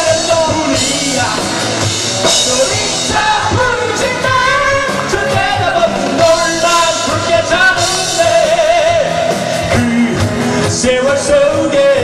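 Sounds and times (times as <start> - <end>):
distorted electric guitars: 0.0 - 12.0
person singing lead vocal: 0.0 - 12.0
steady drum beat: 0.0 - 12.0.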